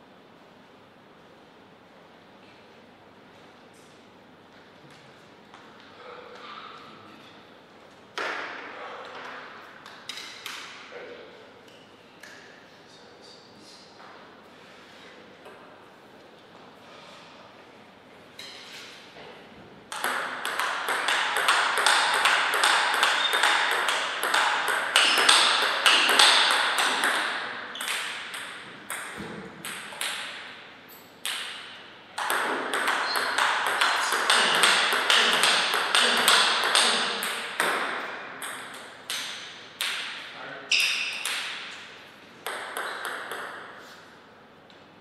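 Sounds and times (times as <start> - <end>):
table tennis ball hits: 8.2 - 8.7, 19.9 - 43.8.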